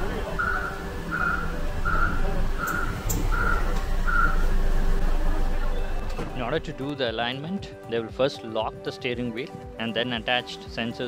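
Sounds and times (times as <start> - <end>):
wheel balancer machine hum: 0.0 - 6.9
pulsing high whistle tone: 0.4 - 4.7.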